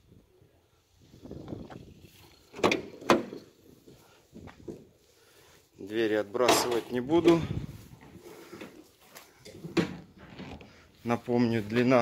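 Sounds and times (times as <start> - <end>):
latch and door clunks: 2.5 - 3.4.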